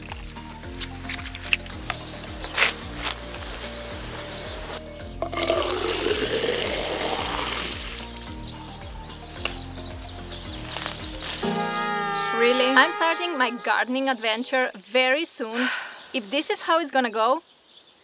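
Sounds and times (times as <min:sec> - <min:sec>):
background music with steady beat: 0:00.0 - 0:14.1
water filling plastic bottle: 0:05.1 - 0:08.0.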